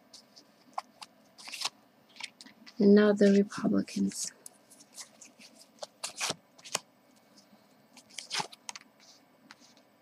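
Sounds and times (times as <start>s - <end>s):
cards rustling and snapping: 0.6s - 2.5s, 4.0s - 8.9s.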